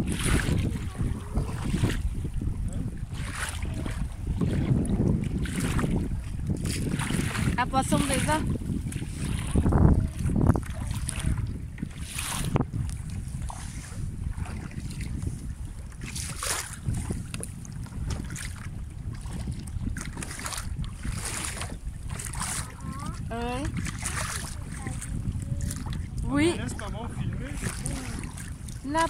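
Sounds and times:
paddle splashing water: 0.0s - 29.0s
wind buffeting microphone: 0.0s - 29.0s.

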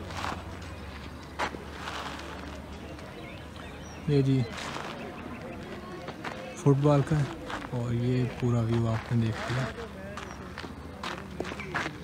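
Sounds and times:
footsteps crunching on gravel: 0.0s - 3.6s, 4.2s - 12.0s
faint distant voices: 0.0s - 12.0s.

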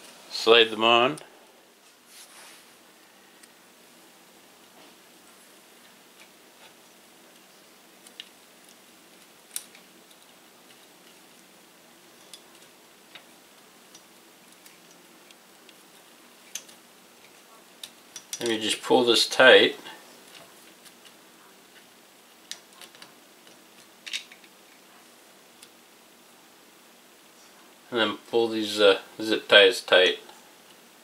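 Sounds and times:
small plastic clicks: 21.8s - 24.6s.

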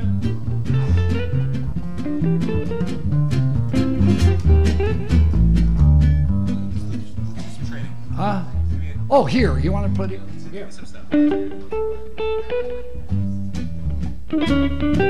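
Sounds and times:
electric guitars picking notes: 0.0s - 8.8s, 9.5s - 15.0s
upright bass walking line: 0.0s - 15.0s.

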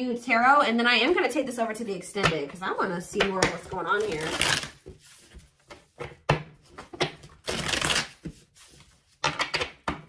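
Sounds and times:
cards being shuffled: 3.4s - 9.8s.

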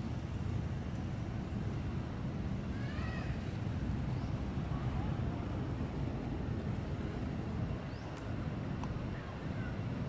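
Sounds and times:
low steady rumble: 0.0s - 10.0s.

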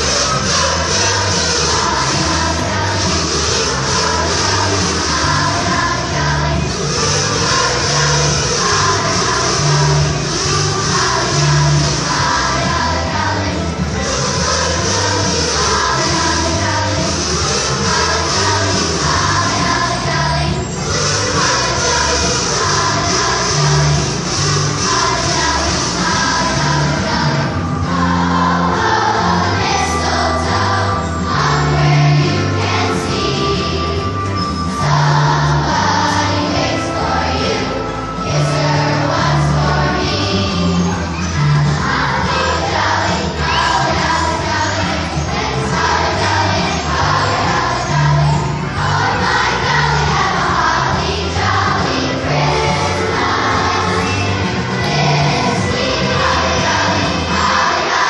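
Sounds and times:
children's choir singing: 0.0s - 58.0s
steady low held notes: 0.0s - 58.0s.

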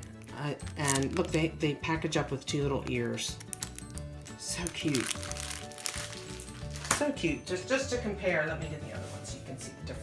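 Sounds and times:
plastic packaging crinkling: 0.0s - 1.6s, 2.6s - 7.2s
background music: 0.0s - 10.0s.

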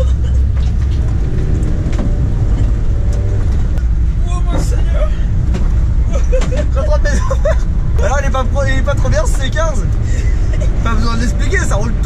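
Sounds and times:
engine and road noise drone: 0.0s - 12.0s.

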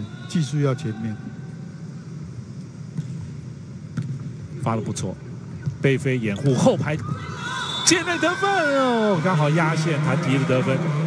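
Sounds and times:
indoor arena background noise: 0.0s - 11.0s.

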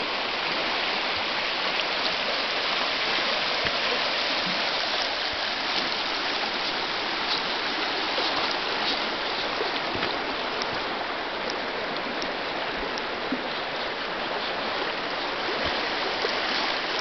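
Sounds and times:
river rushing over gravel: 0.0s - 17.0s.

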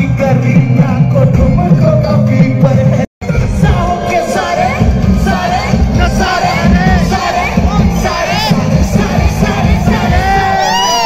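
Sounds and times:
amplified rap music: 0.0s - 11.0s
crowd cheering and shouting: 3.2s - 11.0s.

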